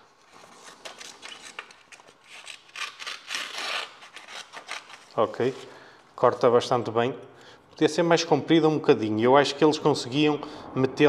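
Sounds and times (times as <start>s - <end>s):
rustling scissor cuts: 0.2s - 5.6s.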